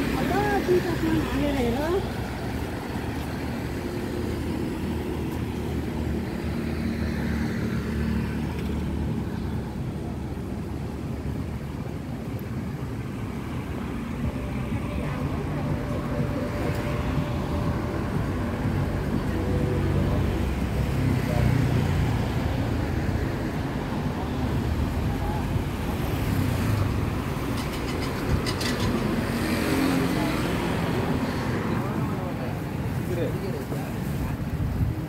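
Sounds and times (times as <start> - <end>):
motorbike and car engines passing: 0.0 - 33.3
voices of passers-by: 0.0 - 35.0.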